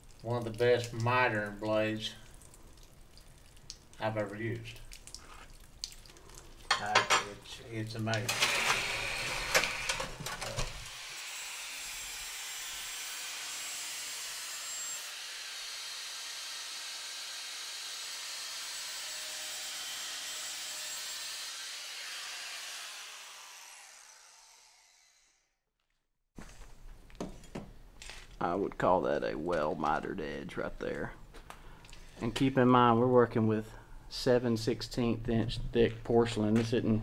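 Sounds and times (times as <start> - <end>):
angle grinder polishing tile: 8.3 - 24.0.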